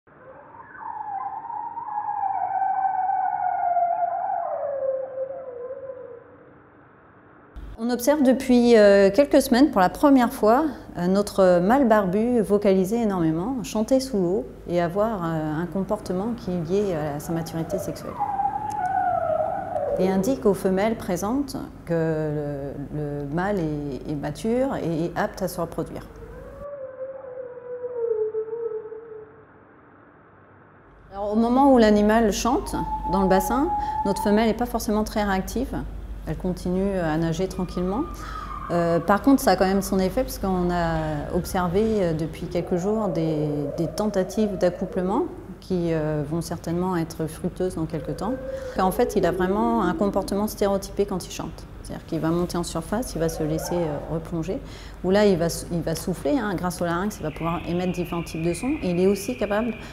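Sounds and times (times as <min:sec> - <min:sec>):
seal call gliding down: 0:00.1 - 0:06.4, 0:15.6 - 0:20.9, 0:25.3 - 0:29.4, 0:31.2 - 0:36.0, 0:36.6 - 0:51.6, 0:52.3 - 0:54.6.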